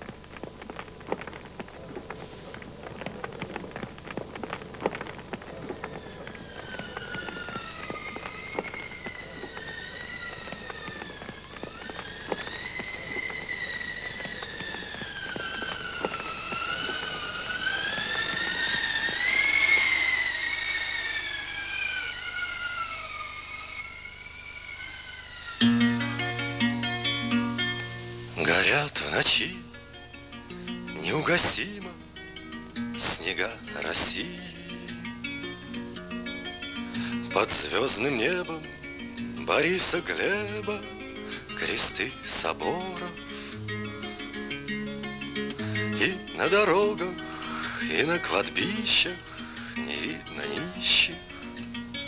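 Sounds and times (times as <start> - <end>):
wood crackling in a stove: 0.0 - 52.0
wavering high whistle: 4.1 - 29.6, 30.5 - 52.0.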